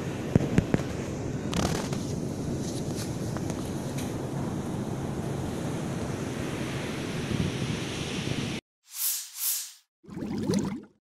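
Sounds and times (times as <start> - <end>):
rising swoosh: 8.9 - 9.9
whooshes: 8.9 - 9.9.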